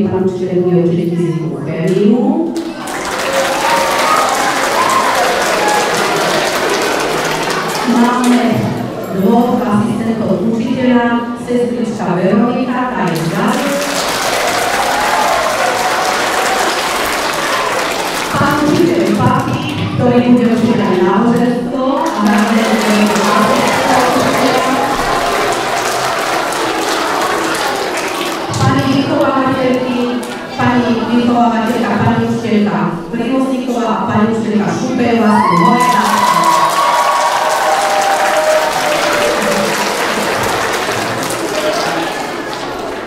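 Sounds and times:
crowd applauding: 0:02.6 - 0:09.1, 0:13.1 - 0:21.0, 0:22.0 - 0:29.2, 0:35.4 - 0:43.0.

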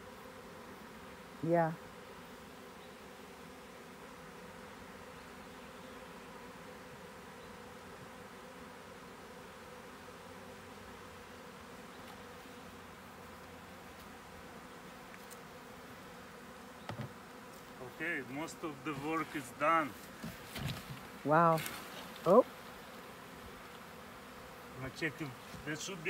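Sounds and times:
bee swarm buzzing: 0:00.0 - 0:26.0
knock: 0:16.9 - 0:17.1.

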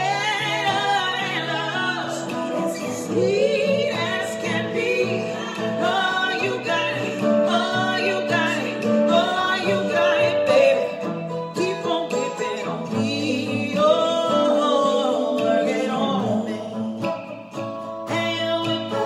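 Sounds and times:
strummed acoustic guitar: 0:00.0 - 0:19.0
woman singing: 0:00.0 - 0:19.0.

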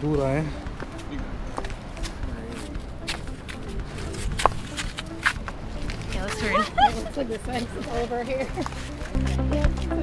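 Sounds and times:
footsteps on concrete steps: 0:00.0 - 0:10.0.

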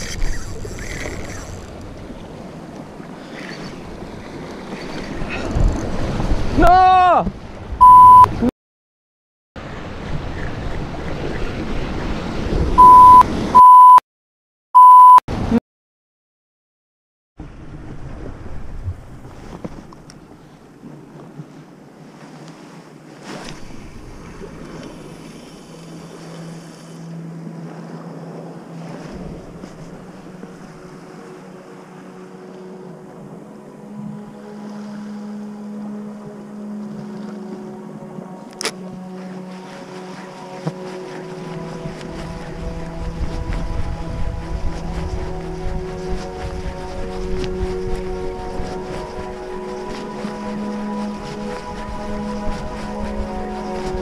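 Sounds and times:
wind buffeting microphone: 0:17.4 - 0:22.2, 0:41.5 - 0:54.0
sea water washing on shore: 0:17.4 - 0:54.0.

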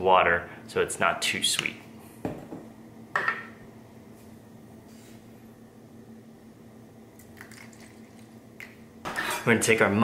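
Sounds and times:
faint water pouring: 0:07.2 - 0:08.4.

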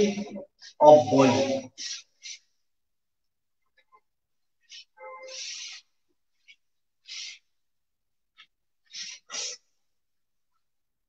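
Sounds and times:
eraser wiping whiteboard: 0:00.0 - 0:02.7, 0:04.6 - 0:07.7, 0:08.3 - 0:10.0
eraser squeak: 0:04.6 - 0:07.5.

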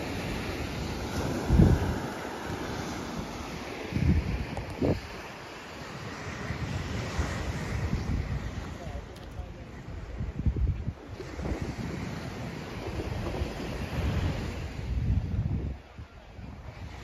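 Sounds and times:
surf breaking on beach: 0:00.0 - 0:17.0
wind buffeting microphone: 0:00.0 - 0:17.0.

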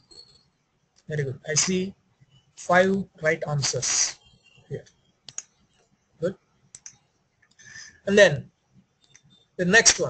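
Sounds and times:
computer mouse clicks: 0:05.2 - 0:05.6, 0:06.7 - 0:07.7.

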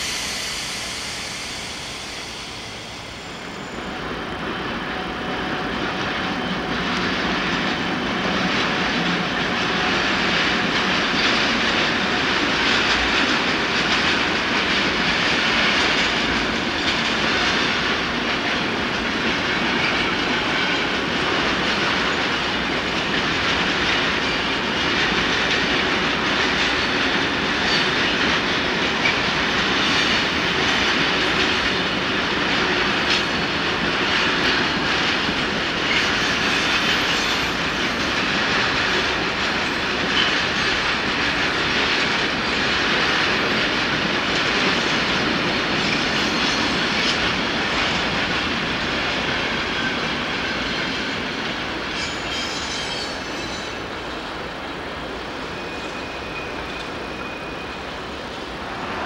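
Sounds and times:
freight train rolling past: 0:00.0 - 0:59.0.

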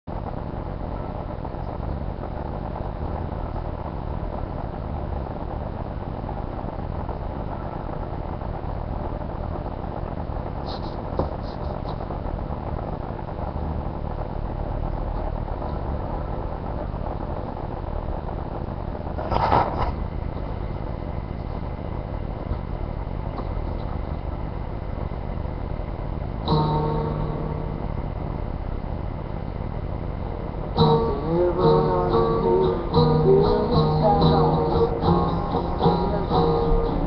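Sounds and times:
low rumble and hiss: 0:00.0 - 0:37.0.

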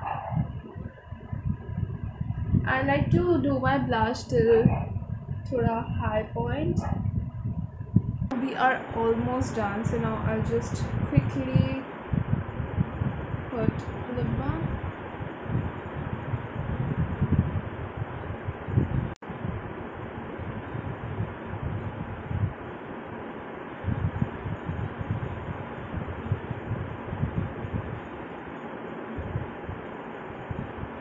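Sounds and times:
irregular low rumbling: 0:00.0 - 0:31.0.

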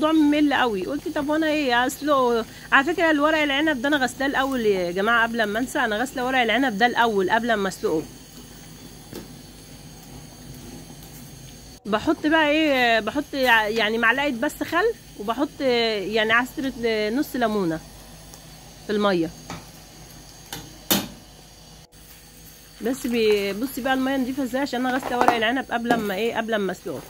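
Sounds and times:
water simmering in pot: 0:00.0 - 0:25.6
low background hum: 0:00.0 - 0:27.0.

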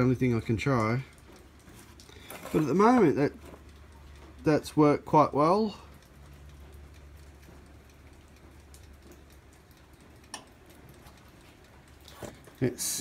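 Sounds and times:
low steady hum: 0:00.0 - 0:13.0.

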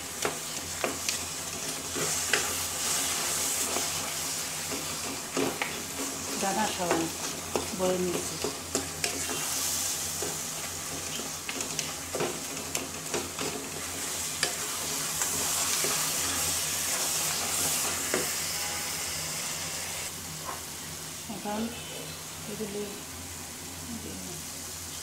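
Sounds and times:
thick mixture sizzling in a pan: 0:00.0 - 0:25.0
spatula scraping and tapping pan: 0:00.2 - 0:18.4.

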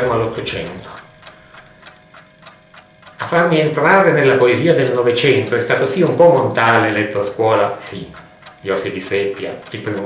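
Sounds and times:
faint regular ticking: 0:00.0 - 0:10.0.

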